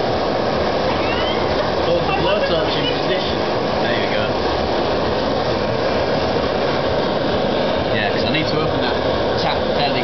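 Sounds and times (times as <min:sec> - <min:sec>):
gas blowtorch hissing: 0:00.0 - 0:10.0.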